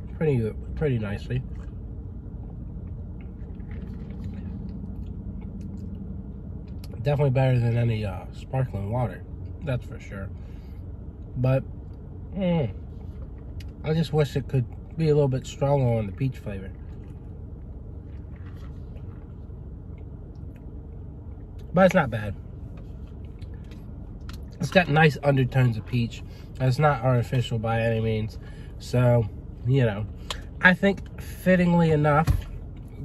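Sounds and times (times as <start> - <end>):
low car cabin rumble: 0.0 - 33.0.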